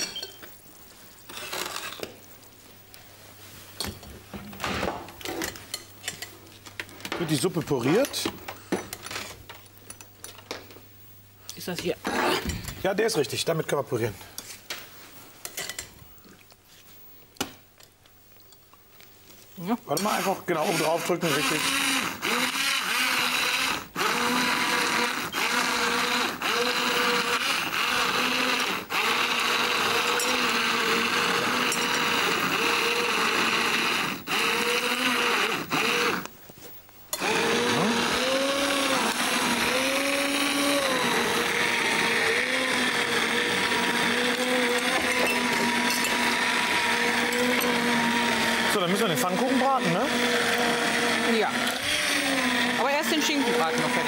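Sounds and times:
immersion blender motor whine: 20.0 - 36.3, 37.2 - 54.0.

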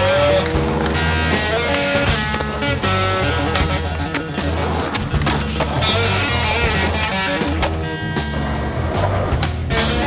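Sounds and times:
skateboard wheels rolling on pavement: 0.0 - 9.7
music with sustained notes and bass: 0.0 - 10.0.

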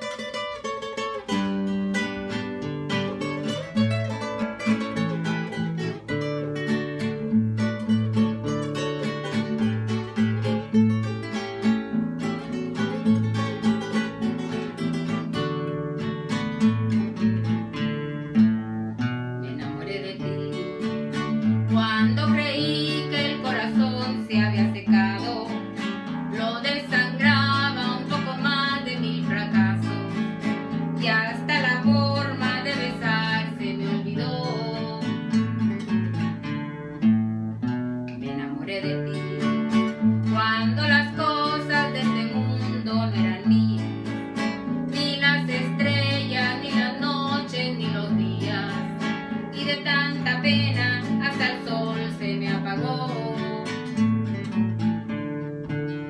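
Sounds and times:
guitar picking melody: 0.0 - 56.0
strummed twelve-string guitar: 0.0 - 56.0.

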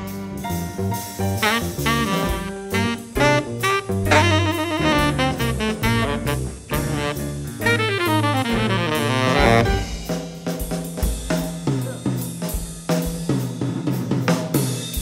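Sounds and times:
drum kit playing: 0.0 - 15.0
small-group jazz: 0.0 - 15.0
fast run of notes: 1.0 - 11.4.

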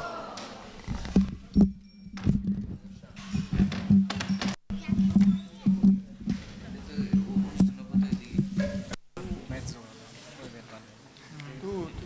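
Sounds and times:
microphone handling knocks: 0.8 - 9.7
steady low hum: 1.1 - 9.8.

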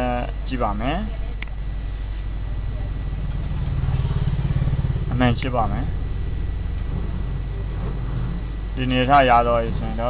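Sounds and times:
low pulsing mechanical rumble: 0.0 - 10.0
click: 1.4 - 1.6.

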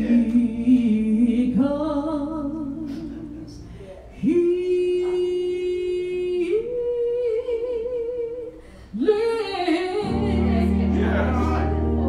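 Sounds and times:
solo voice singing gospel: 0.0 - 12.0
sustained keyboard chord: 10.0 - 12.0.

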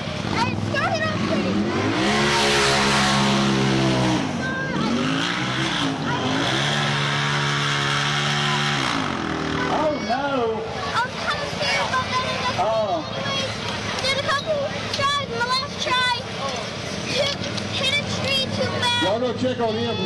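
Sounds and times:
buggy engine revving: 0.0 - 20.0.

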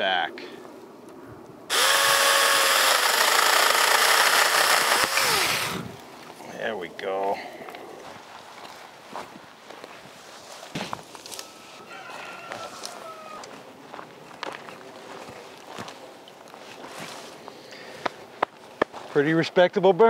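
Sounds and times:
footsteps crunching on gravel: 7.8 - 19.3
branches dragged along ground: 8.0 - 17.4.

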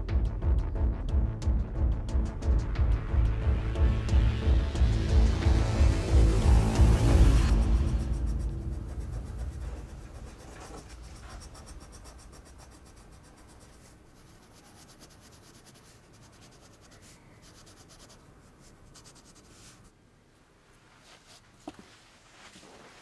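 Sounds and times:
low rumble: 0.0 - 11.2
pencil scratching on paper: 6.8 - 19.9.

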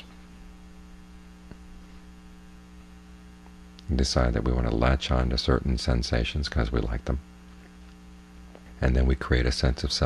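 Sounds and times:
electrical mains hum: 0.0 - 10.0.

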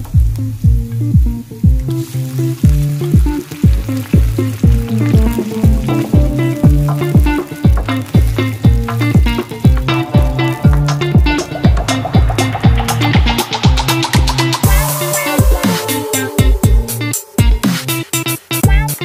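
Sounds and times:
music with steady beat: 0.0 - 2.0, 2.6 - 19.0
onions sizzling in oil: 0.0 - 19.0
sauce bubbling in a pan: 0.2 - 19.0.

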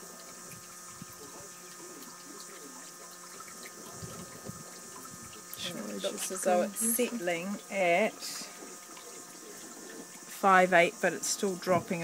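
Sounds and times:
rushing noise like running water: 0.0 - 12.0
faint distant voices: 1.0 - 7.1.

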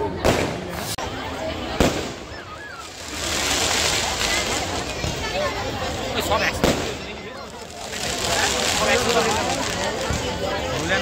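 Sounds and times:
firework fountains hissing crackle: 0.0 - 11.0.

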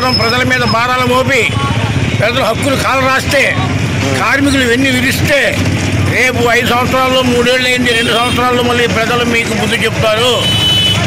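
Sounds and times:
road traffic noise: 0.0 - 11.0
man speaking: 2.2 - 10.6.

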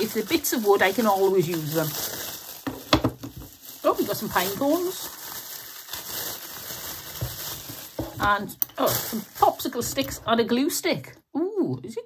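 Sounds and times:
plastic bag crinkling: 0.0 - 10.3.

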